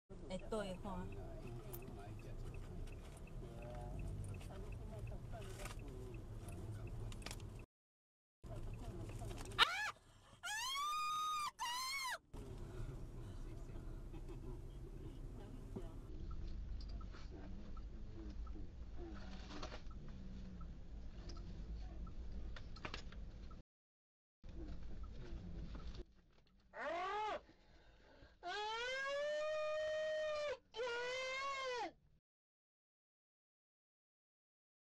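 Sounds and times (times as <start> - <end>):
low street traffic rumble: 0.1 - 7.7, 12.4 - 23.6.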